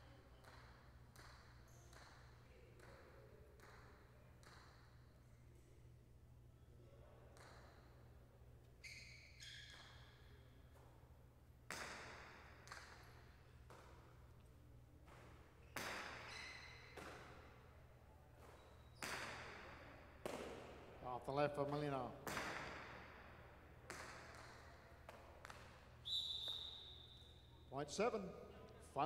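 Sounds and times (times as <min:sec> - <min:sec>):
ball striking court walls: 0:11.7 - 0:14.2, 0:15.0 - 0:17.6, 0:18.4 - 0:21.0, 0:21.6 - 0:27.0.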